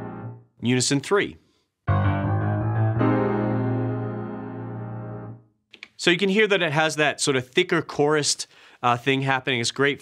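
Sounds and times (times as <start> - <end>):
piano chords: 0.0 - 0.5, 1.9 - 5.5.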